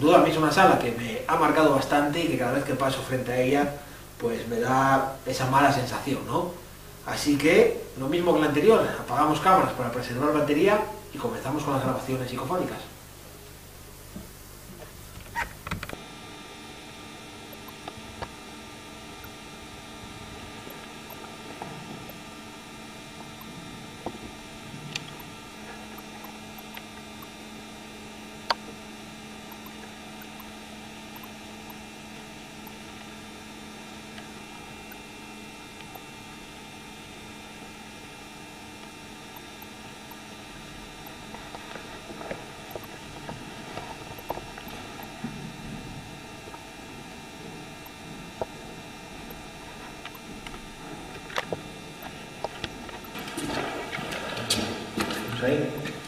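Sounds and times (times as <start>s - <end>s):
electrical hum and hiss: 0.0s - 56.0s
sharp clicks: 41.0s - 43.0s, 43.8s - 45.2s, 49.3s - 53.6s.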